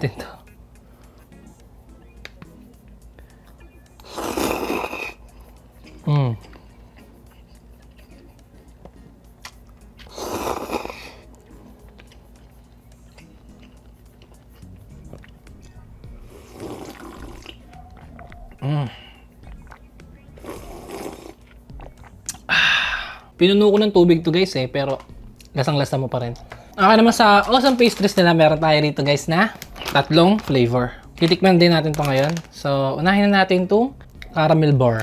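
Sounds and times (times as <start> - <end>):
noodles being slurped: 4.0 - 5.2, 16.3 - 17.6, 19.7 - 22.4.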